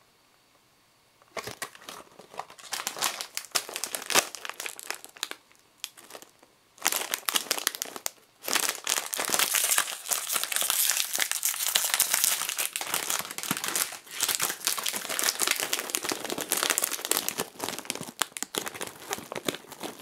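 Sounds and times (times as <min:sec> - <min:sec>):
foil snack pouch crinkling: 0:01.4 - 0:20.0.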